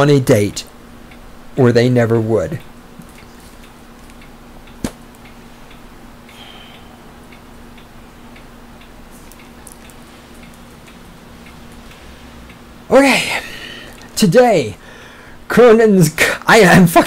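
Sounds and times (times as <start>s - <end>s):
faint regular ticking: 0.0s - 16.5s
faint steady hum: 0.0s - 17.0s.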